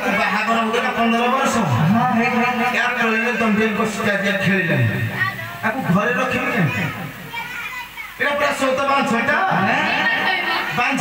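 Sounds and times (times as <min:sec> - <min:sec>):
actor speaking dialogue: 0:00.0 - 0:07.3, 0:08.1 - 0:11.0.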